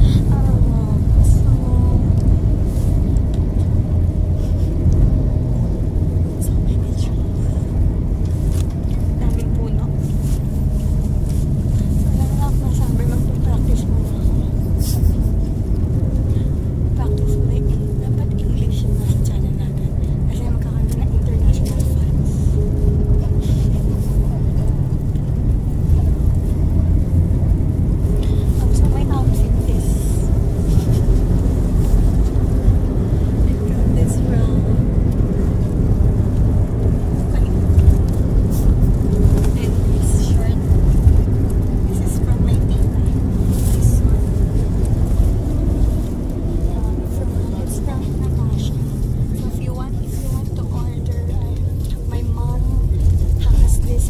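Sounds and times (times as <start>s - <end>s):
people talking: 0.0s - 2.3s, 6.3s - 7.7s, 9.0s - 10.8s, 11.9s - 15.6s, 16.3s - 24.8s, 28.1s - 31.0s, 33.4s - 34.9s, 37.2s - 37.9s, 38.5s - 40.7s, 41.9s - 44.4s, 46.6s - 54.0s
car cabin road noise: 0.0s - 54.0s.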